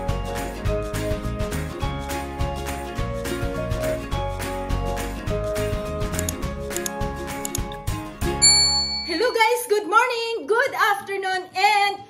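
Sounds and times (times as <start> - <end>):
bright bell-like ding: 8.4 - 9.5.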